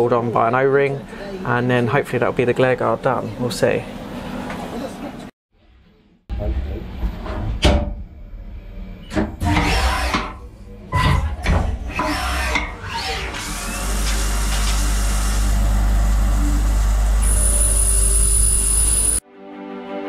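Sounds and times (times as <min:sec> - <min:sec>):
lathe cutting noise: 0:13.1 - 0:19.2
high steady whine: 0:16.4 - 0:19.2.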